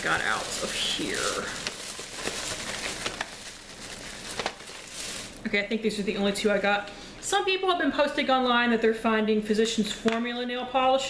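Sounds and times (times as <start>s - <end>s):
shopping bag rustling: 0.0s - 5.5s.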